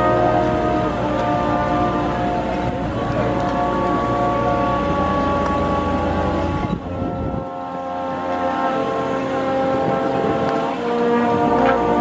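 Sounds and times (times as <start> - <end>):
brass ensemble chords: 0.0 - 12.0
tuba low notes: 0.0 - 12.0.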